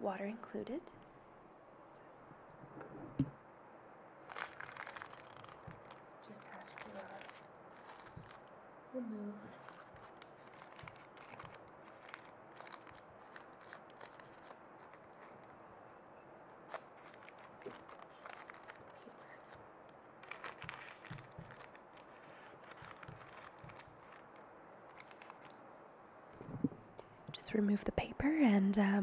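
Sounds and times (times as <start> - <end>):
faint background noise: 0.0 - 29.0
paper wrapper crinkling: 4.2 - 8.5, 9.5 - 15.5, 16.6 - 25.6.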